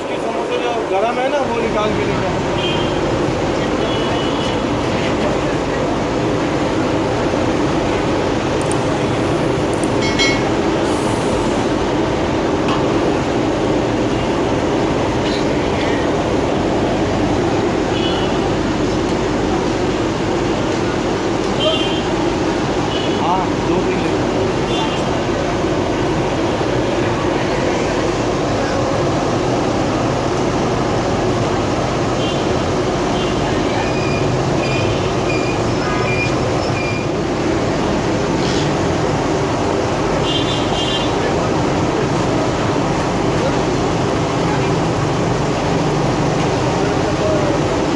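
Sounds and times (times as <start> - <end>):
street noise: 0.0 - 47.9.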